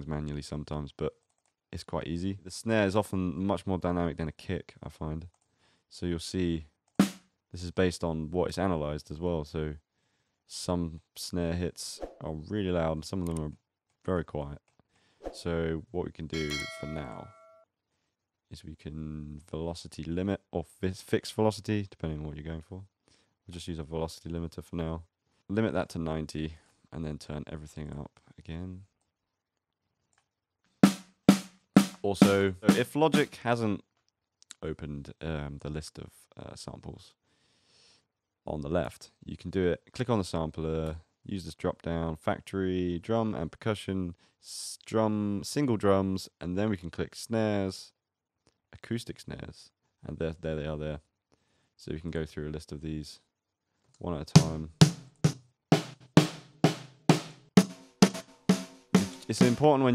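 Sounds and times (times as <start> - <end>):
sharp snare drum hits: 7.0 - 7.2, 30.8 - 33.3, 54.4 - 59.7.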